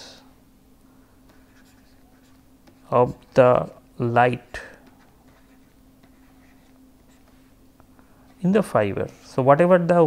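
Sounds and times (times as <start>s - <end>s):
low steady hum: 0.0s - 10.0s
stylus scratching on pen tablet: 1.3s - 2.9s, 4.8s - 7.5s.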